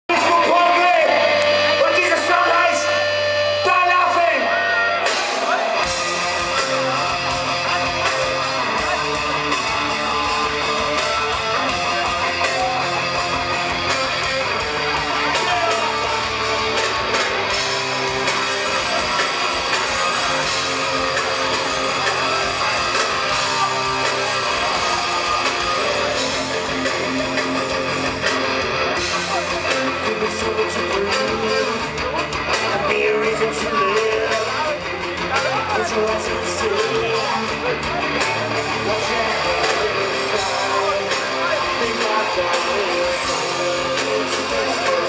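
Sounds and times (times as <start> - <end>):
electric guitar riff: 0.0 - 45.0
rock band playing live: 0.0 - 45.0.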